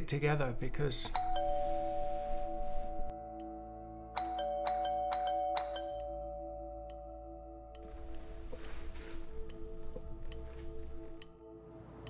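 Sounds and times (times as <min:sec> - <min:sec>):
two-note doorbell chime: 0:01.1 - 0:08.3.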